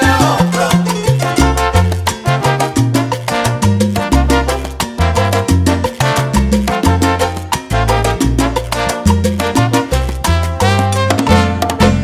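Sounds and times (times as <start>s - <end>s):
instrumental salsa band: 0.0s - 12.0s.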